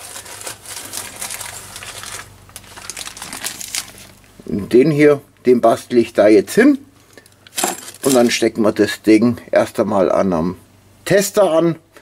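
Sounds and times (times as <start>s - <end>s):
hand rummaging in pocket: 0.0s - 4.2s.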